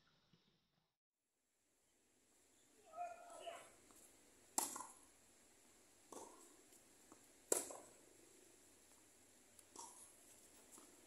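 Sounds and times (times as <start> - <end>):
tennis ball hit by racket: 4.6 - 5.0, 6.1 - 6.5, 7.1 - 8.0.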